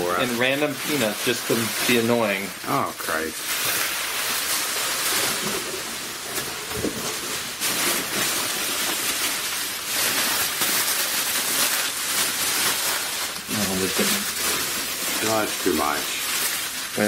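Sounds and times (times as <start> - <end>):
bubble wrap crinkling: 0.0 - 17.0.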